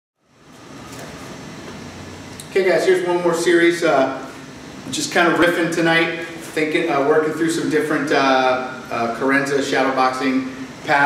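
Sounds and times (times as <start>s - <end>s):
room noise hiss: 0.2s - 11.0s.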